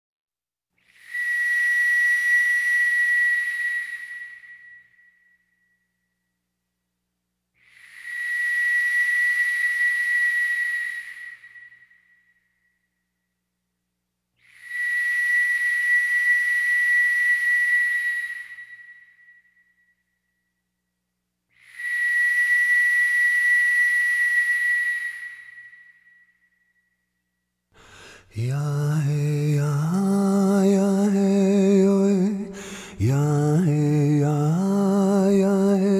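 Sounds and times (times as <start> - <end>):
breathy high whistle: 0.8 - 6.4, 7.6 - 13.4, 14.4 - 20.9, 21.5 - 35.9.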